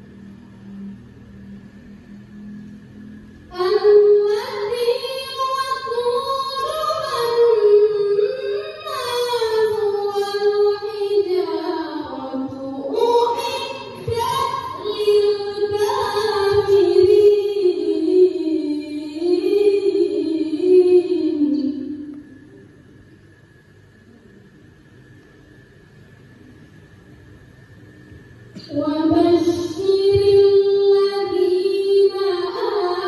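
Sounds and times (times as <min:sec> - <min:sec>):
faint room noise: 0:00.0 - 0:33.0
steady low hum: 0:00.0 - 0:33.0
woman chanting into microphone: 0:03.5 - 0:22.2, 0:28.6 - 0:33.0.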